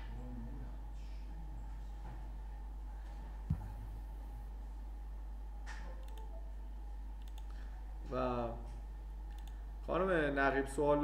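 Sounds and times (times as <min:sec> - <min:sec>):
low electrical hum: 0:00.0 - 0:11.0
computer mouse clicks: 0:05.8 - 0:06.3, 0:07.2 - 0:07.6, 0:09.3 - 0:09.6.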